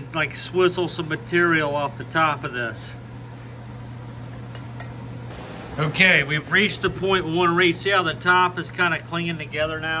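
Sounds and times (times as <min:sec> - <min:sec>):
glass rod clinking against pan: 0:01.8 - 0:02.4, 0:04.5 - 0:05.0.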